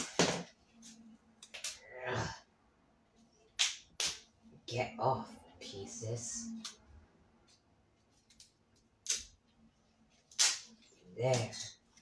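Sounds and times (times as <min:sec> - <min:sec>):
plastic balls cracking on wooden floor: 0:00.0 - 0:00.6.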